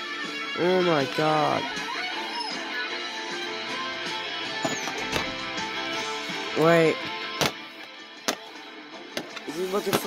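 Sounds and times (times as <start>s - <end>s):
background guitar music: 0.0s - 10.0s.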